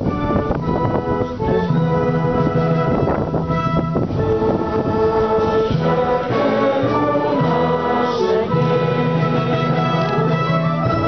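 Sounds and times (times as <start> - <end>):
orchestral music: 0.0 - 11.0
choir singing: 1.5 - 11.0.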